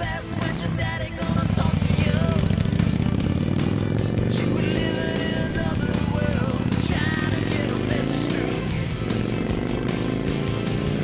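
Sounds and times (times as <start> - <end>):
person singing: 0.0 - 2.9, 4.2 - 8.9
motorcycle engine running: 0.0 - 11.0
rock music: 0.0 - 11.0.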